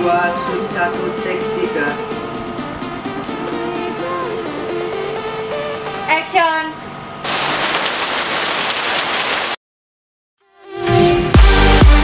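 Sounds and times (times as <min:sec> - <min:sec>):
rain falling: 0:07.2 - 0:09.6.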